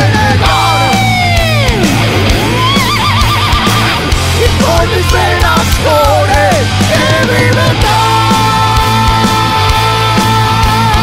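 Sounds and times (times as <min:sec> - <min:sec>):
bass and drums: 0:00.0 - 0:11.0
distorted lead guitar: 0:00.0 - 0:11.0.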